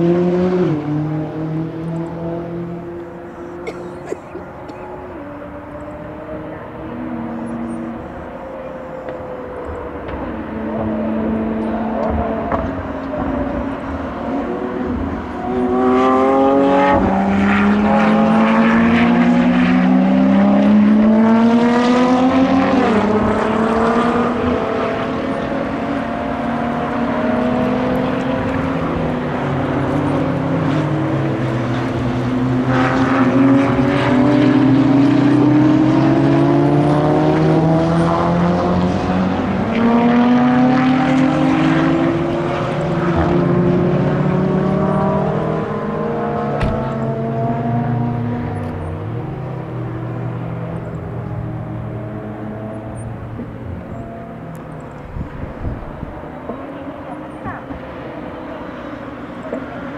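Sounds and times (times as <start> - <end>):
sports cars accelerating: 0.0 - 59.9.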